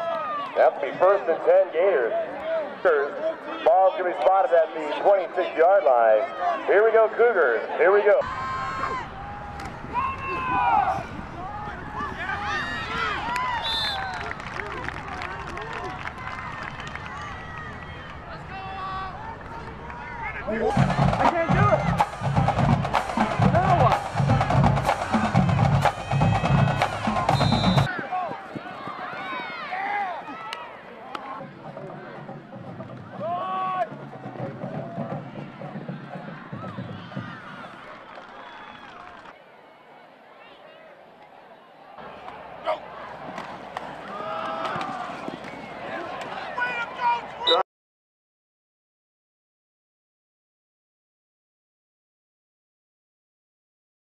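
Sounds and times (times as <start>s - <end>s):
crowd voices and shouts: 0.0s - 47.6s
drums playing a steady beat: 20.6s - 27.9s.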